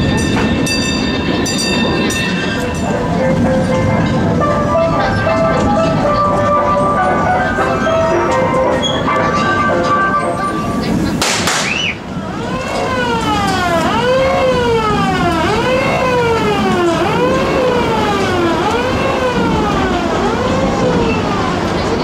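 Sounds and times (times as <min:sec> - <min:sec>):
fire engine siren wailing: 0:11.5 - 0:22.0.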